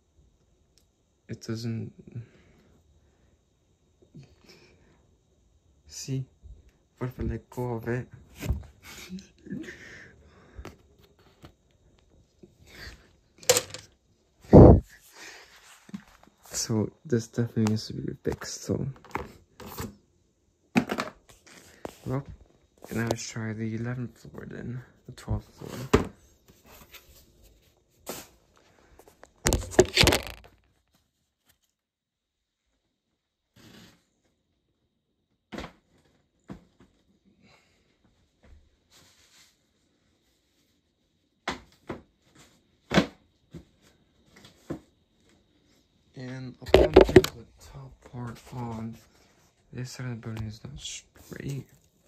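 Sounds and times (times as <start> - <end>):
marble clicks and rustles: 29.2 - 30.9.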